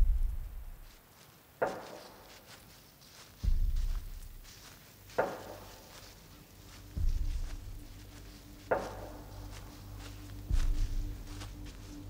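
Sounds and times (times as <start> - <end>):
footsteps on forest floor: 0.0 - 12.0
low steady drone: 6.0 - 12.0.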